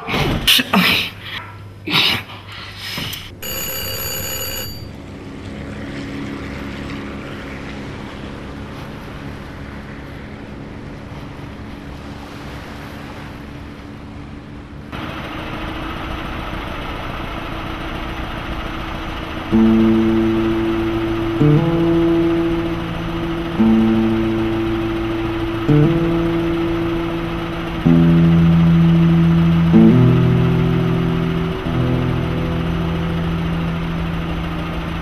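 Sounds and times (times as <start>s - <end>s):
boat engine drone: 3.2s - 35.0s
high ringing tone: 3.4s - 5.0s, 19.5s - 35.0s.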